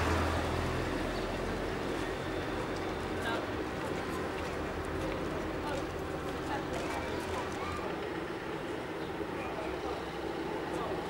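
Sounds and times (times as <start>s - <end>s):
vehicle engine running: 0.0s - 8.5s.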